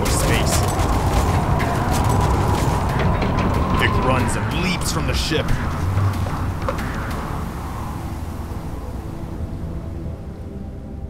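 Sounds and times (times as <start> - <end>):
spaceship engine rumble: 0.0 - 8.6.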